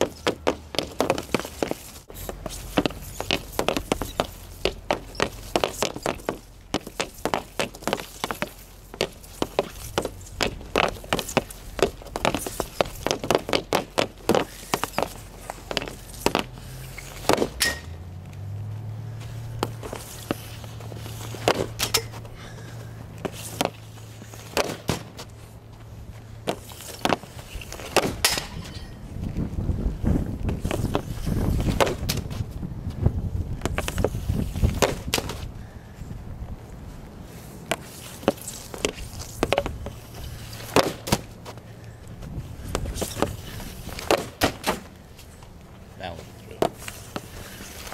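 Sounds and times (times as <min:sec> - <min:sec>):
hockey stick clacking puck: 0:00.0 - 0:01.8, 0:02.5 - 0:17.9, 0:19.6 - 0:22.2, 0:23.2 - 0:25.1, 0:26.5 - 0:28.9, 0:31.7 - 0:32.2, 0:34.8 - 0:35.4, 0:40.6 - 0:41.3, 0:42.8 - 0:44.8
puck shot cracks: 0:17.2 - 0:17.9, 0:21.3 - 0:22.2, 0:24.4 - 0:25.2, 0:26.5 - 0:28.8, 0:40.6 - 0:41.4, 0:42.7 - 0:44.9.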